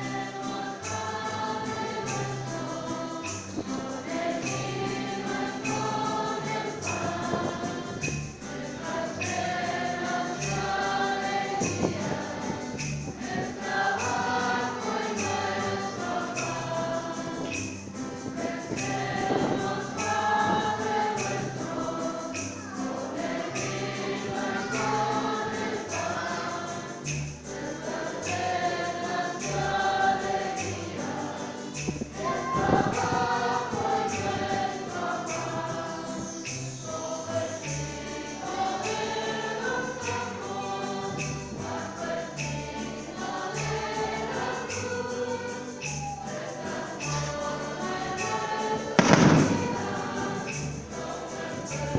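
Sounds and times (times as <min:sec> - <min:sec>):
choir singing a hymn: 0:00.0 - 0:51.9
instrumental accompaniment: 0:00.0 - 0:51.9.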